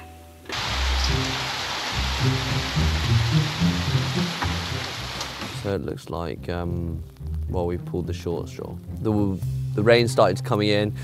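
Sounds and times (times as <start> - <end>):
background music with bass: 0.0 - 11.0
rain hissing: 0.5 - 5.7.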